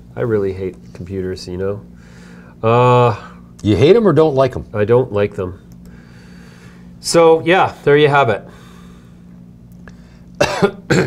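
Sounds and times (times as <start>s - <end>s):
faint low hum: 0.0s - 11.0s
man coughing: 10.4s - 11.0s.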